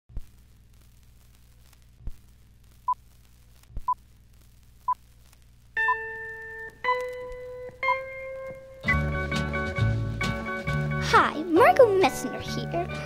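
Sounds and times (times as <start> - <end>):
faint hum: 0.1 - 8.9
crackles: 0.1 - 9.0, 10.2 - 13.0.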